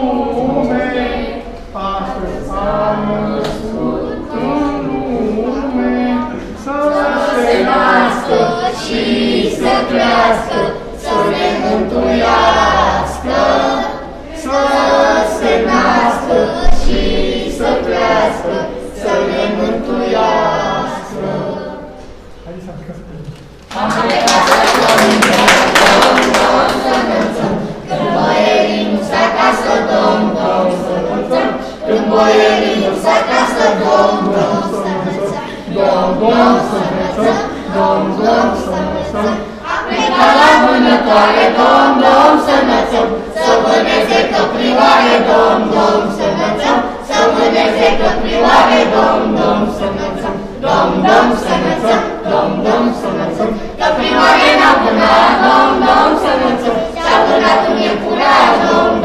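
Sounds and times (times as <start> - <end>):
group singing unaccompanied: 0.0 - 22.4, 23.5 - 59.0.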